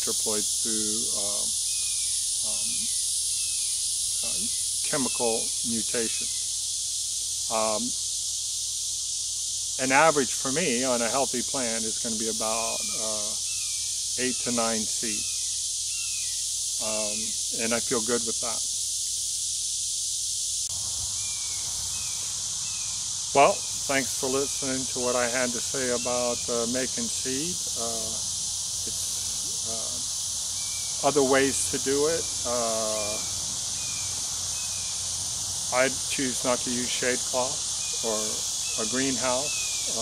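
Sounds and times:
man saying um: 0:00.0 - 0:01.5, 0:02.5 - 0:02.9, 0:04.2 - 0:06.2, 0:07.5 - 0:07.9, 0:09.8 - 0:13.4, 0:14.2 - 0:15.2, 0:16.8 - 0:18.6, 0:23.4 - 0:28.2, 0:28.9 - 0:30.0, 0:31.0 - 0:33.2, 0:35.8 - 0:40.0
high-pitched insect chorus: 0:00.0 - 0:40.0.

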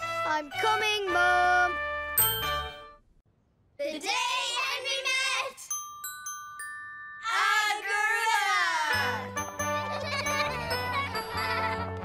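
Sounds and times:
cartoon background music: 0:00.0 - 0:03.0, 0:08.9 - 0:12.0.

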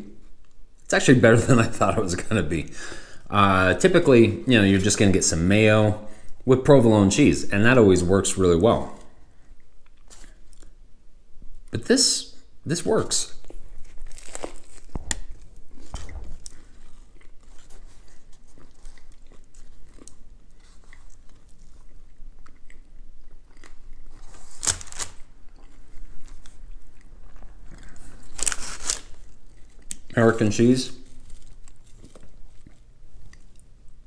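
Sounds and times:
crunchy sandwich chewing: 0:13.4 - 0:34.0.

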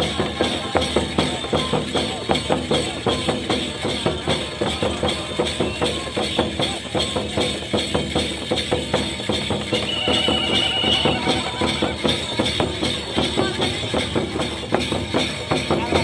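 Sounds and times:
cymbals: 0:00.0 - 0:16.0
drums beating quick rhythm: 0:00.0 - 0:16.0
jingling percussion: 0:00.0 - 0:16.0
high steady tone: 0:09.8 - 0:12.7.

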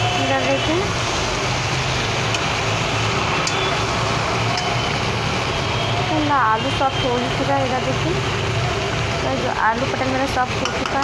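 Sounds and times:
food sizzling in a pan: 0:00.0 - 0:05.7
spatula clicking against pan: 0:10.6 - 0:11.0.

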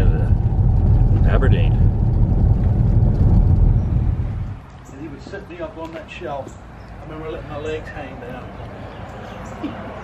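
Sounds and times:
car cabin road rumble: 0:00.0 - 0:05.4.

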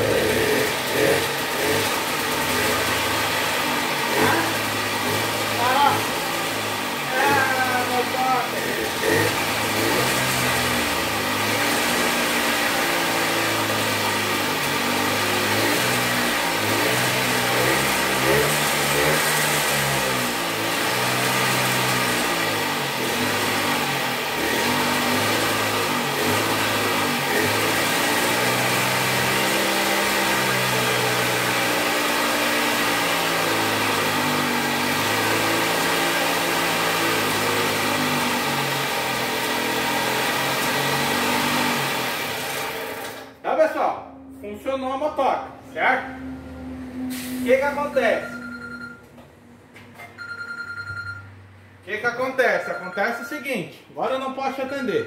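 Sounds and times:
small two-stroke engine revving: 0:00.0 - 0:43.4.

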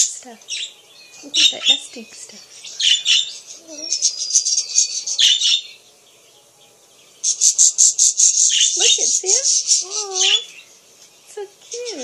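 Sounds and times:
budgerigars chirping: 0:00.0 - 0:12.0.

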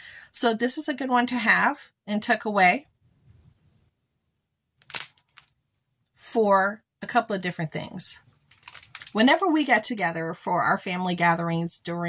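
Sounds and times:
plastic packaging crinkling: 0:08.5 - 0:09.2.

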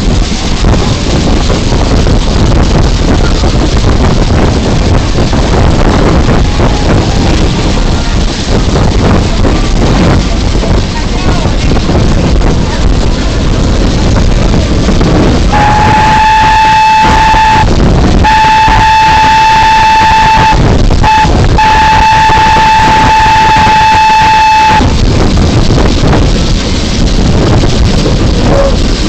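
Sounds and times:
running train noise: 0:00.0 - 0:29.0
rush of wind: 0:00.0 - 0:29.0
steam locomotive whistle: 0:15.5 - 0:25.0.

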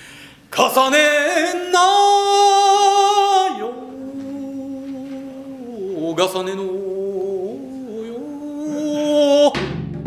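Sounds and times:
man singing low note: 0:00.6 - 0:09.8.

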